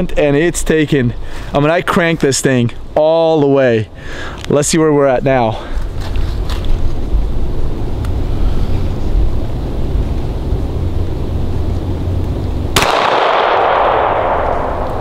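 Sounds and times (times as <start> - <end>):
steady low rumble: 0.0 - 15.0
pistol shot with echo: 12.7 - 15.0.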